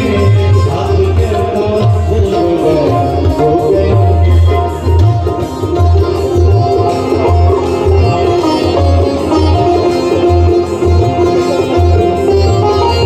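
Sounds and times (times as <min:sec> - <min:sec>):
keyboard melody: 0:00.0 - 0:13.0
tabla playing: 0:00.0 - 0:13.0.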